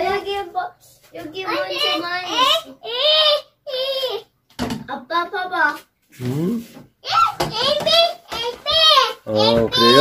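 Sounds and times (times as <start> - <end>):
toddler speaking: 0.0 - 4.3, 7.0 - 10.0
toddler vocal sounds: 1.5 - 4.4, 6.6 - 10.0.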